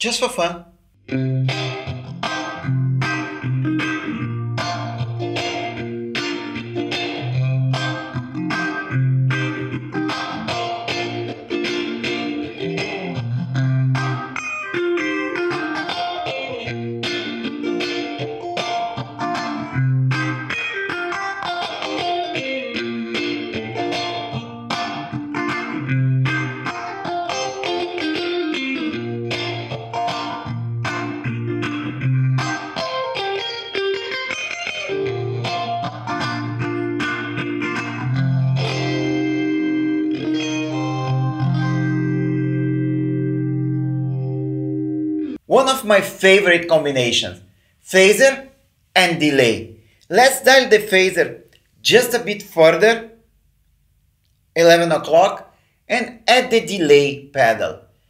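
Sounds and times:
electric guitar reggae rhythm: 0.0 - 58.0.

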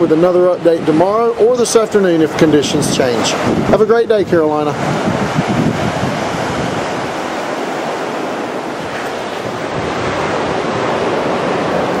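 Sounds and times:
small ocean waves washing in: 0.0 - 12.0
wind buffeting microphone: 0.0 - 12.0.

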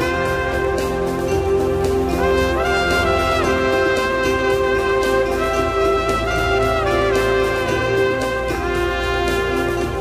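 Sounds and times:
sustained orchestral backing: 0.0 - 10.0
trumpet long held notes: 0.0 - 10.0.

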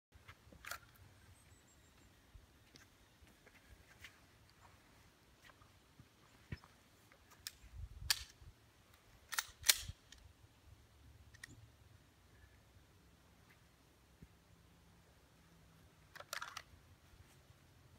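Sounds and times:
pistol handling clicks: 7.4 - 10.3, 16.1 - 16.7.

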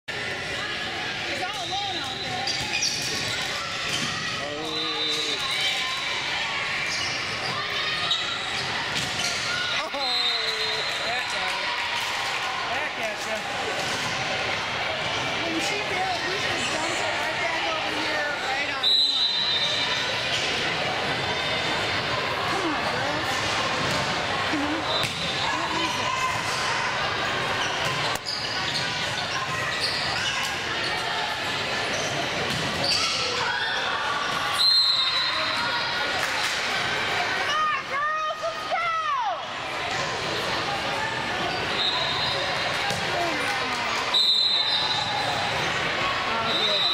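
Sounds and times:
shoes squeaking on court floor: 1.4 - 5.7, 27.3 - 31.1, 31.8 - 33.4.

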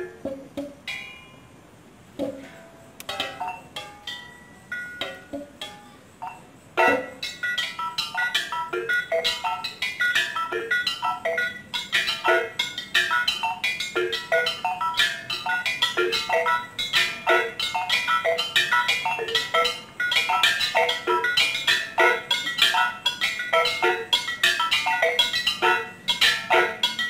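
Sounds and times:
gamelan kettle gongs playing: 6.8 - 27.0.

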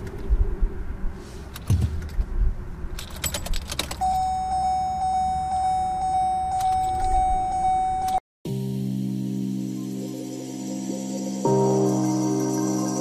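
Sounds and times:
car keys jangling in ignition: 3.0 - 8.2
high-pitched electronic warning tone: 4.0 - 8.2.

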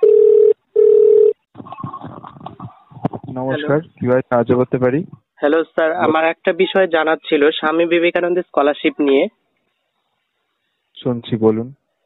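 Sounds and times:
telephone ringback tone: 0.0 - 1.4.

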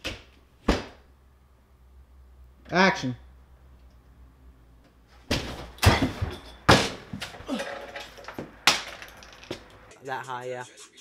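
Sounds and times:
door banging: 5.3 - 9.9.

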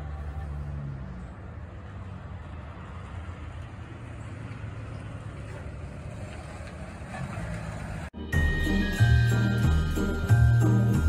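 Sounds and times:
truck engine and tyre rumble: 0.0 - 11.0
christmas music with jingle bells: 8.2 - 11.0.

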